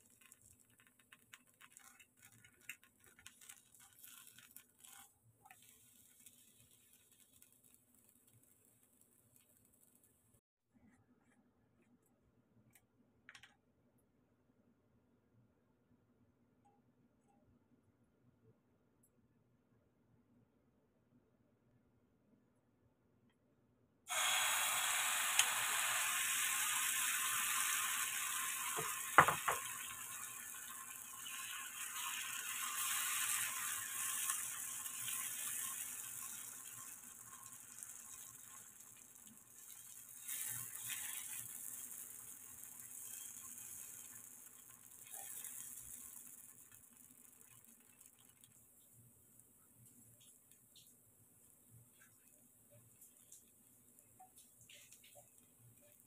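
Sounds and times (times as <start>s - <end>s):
batter sizzling in hot oil: 0.0s - 10.4s, 24.1s - 56.0s.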